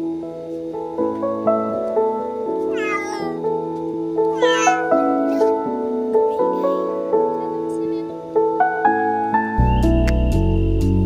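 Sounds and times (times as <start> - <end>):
soft piano music: 0.0 - 11.0
cat meowing: 2.7 - 3.5, 4.3 - 5.6.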